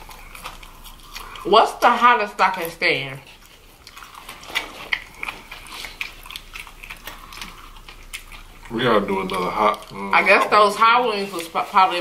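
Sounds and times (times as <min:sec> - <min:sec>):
chewing and biting fried chicken: 0:00.0 - 0:12.0.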